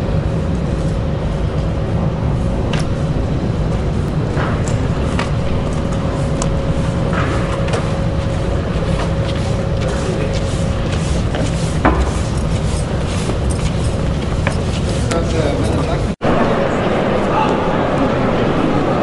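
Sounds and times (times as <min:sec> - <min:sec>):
city traffic rumble: 0:00.0 - 0:19.0.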